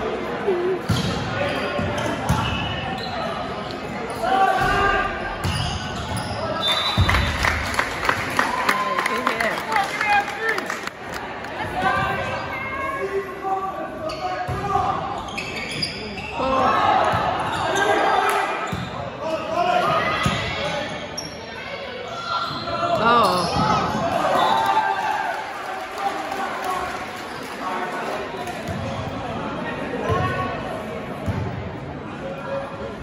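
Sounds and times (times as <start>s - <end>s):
spectators' voices: 0.0s - 33.0s.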